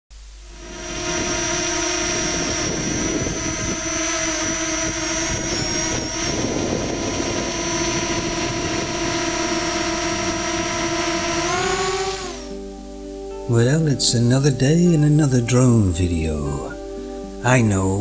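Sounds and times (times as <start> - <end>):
drone propellers whining: 0.2 - 13.9.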